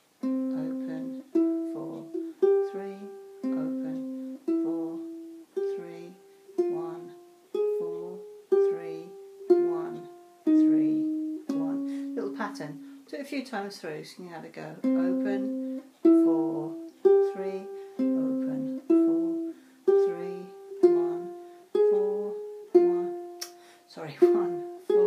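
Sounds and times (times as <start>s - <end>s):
ukulele single-note melody: 0.2s - 13.0s, 14.8s - 25.0s.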